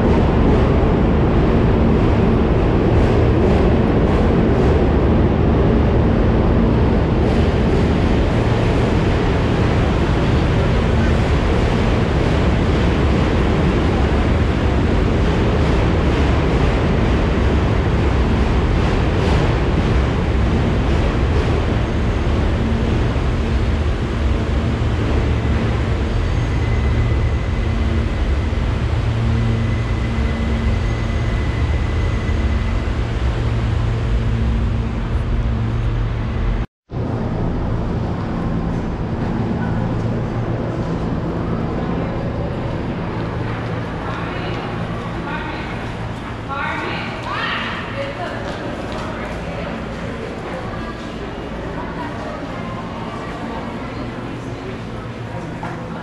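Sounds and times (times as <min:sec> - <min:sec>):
loud steady rumble: 0:00.0 - 0:56.0
low hum: 0:00.0 - 0:56.0.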